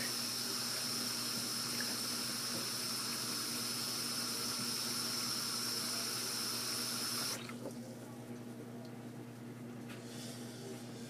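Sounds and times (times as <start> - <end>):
faucet running into sink: 0.0 - 7.7.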